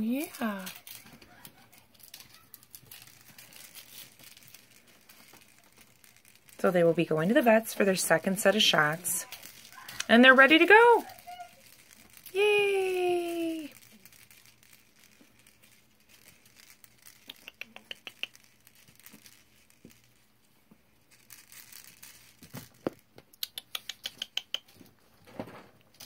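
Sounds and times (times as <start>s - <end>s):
puppies pattering and crinkling: 0.0s - 26.0s.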